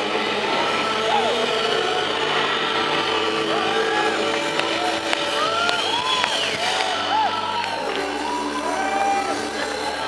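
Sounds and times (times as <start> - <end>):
distorted electric guitar drone: 0.0 - 10.0.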